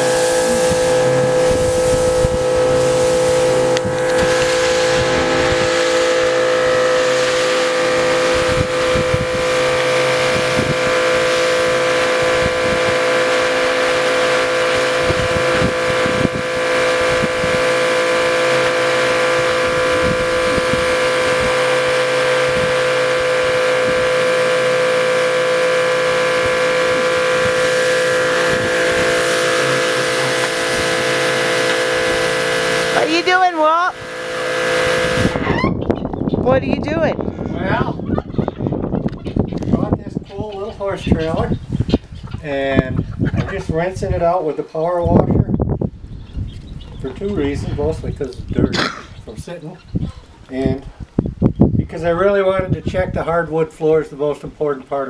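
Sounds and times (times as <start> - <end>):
water spraying from wand: 0.0 - 35.4
pressure washer running: 0.0 - 41.5.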